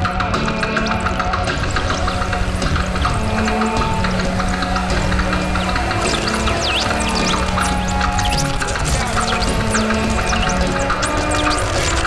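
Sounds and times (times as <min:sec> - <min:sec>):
noisy crackles: 0:00.0 - 0:12.0
low synth drone: 0:00.3 - 0:12.0.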